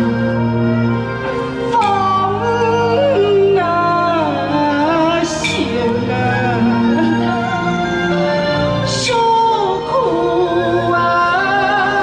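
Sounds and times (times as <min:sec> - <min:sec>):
traditional orchestra music: 0:00.0 - 0:12.0.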